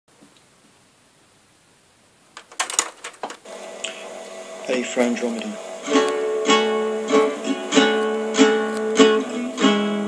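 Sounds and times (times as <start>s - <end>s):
sharp clicks and taps: 2.4s - 4.0s
guitar ringing a chord: 3.5s - 10.0s.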